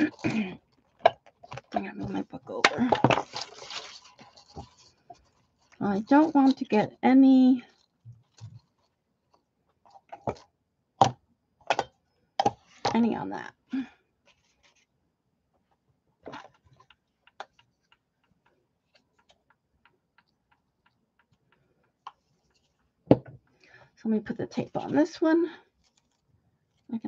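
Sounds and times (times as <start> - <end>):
knocks and clicks of craft supplies: 11.0 - 13.2, 23.1 - 23.5.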